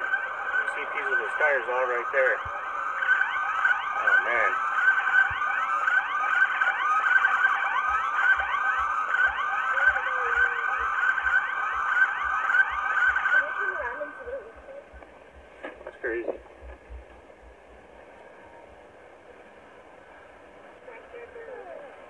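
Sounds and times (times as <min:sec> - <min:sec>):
police siren yelping: 0:00.0 - 0:15.1.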